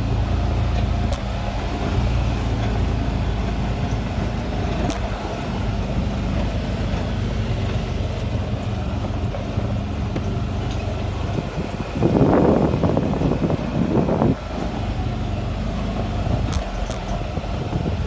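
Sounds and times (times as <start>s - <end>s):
road noise: 0.0s - 18.0s
vehicle engine running: 0.0s - 18.0s.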